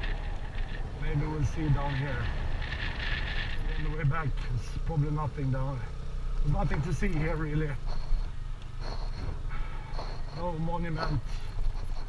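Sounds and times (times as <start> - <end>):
small motorbike engine running: 0.0 - 12.0
tyres rumbling on gravel: 0.0 - 12.0.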